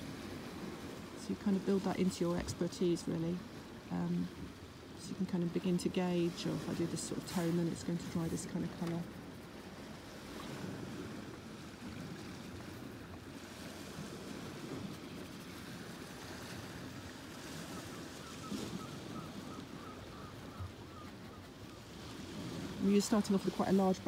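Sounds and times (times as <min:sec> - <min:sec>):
sea waves breaking on shore: 0:00.0 - 0:24.0
wind: 0:00.0 - 0:24.0.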